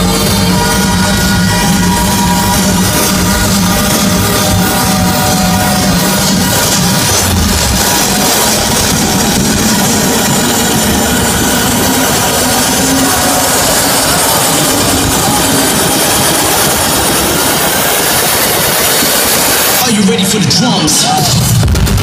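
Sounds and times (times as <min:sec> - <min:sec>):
loud electronic dance music: 0:00.0 - 0:22.0.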